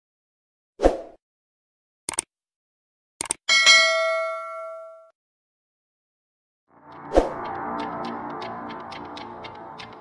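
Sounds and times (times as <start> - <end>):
bright bell ding: 3.5 - 5.1.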